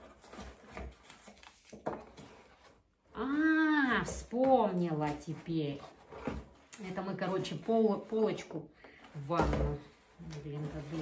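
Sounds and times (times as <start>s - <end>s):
cardboard box rustling and scraping: 0.0s - 8.4s, 9.2s - 11.0s.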